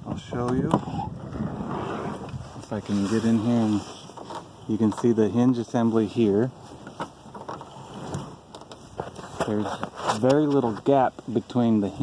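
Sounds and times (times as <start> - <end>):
phone handling rustle: 6.6 - 11.3.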